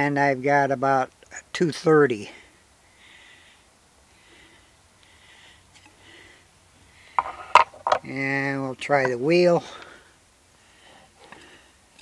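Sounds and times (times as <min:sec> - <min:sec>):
soft breathing: 0:02.2 - 0:07.5, 0:09.6 - 0:12.0.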